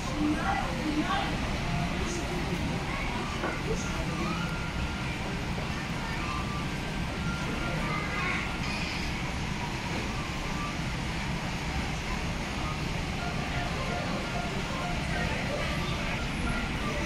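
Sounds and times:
distant voices: 0.0s - 17.0s
low rumble of eating hall: 0.0s - 17.0s.

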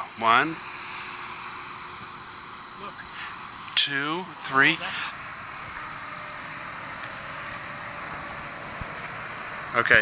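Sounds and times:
faint high whine: 0.0s - 10.0s
steady background hiss: 0.0s - 10.0s.

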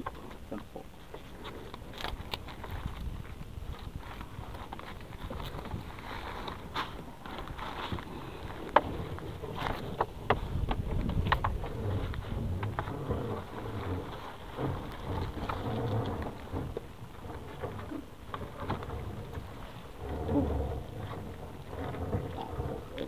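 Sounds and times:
low uneven rumble: 0.0s - 23.0s.

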